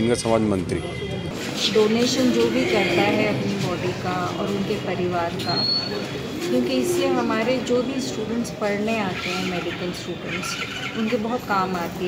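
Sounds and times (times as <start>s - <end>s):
woman talking: 1.6s - 12.0s.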